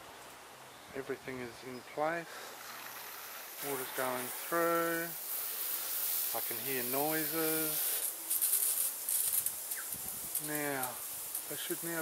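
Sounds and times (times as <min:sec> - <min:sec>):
misting nozzles hissing: 0:02.1 - 0:12.0
rising bird chirp: 0:09.6 - 0:10.1.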